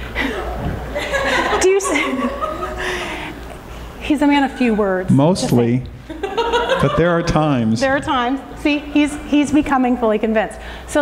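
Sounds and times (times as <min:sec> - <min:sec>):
chuckling laughter: 0:06.1 - 0:07.3.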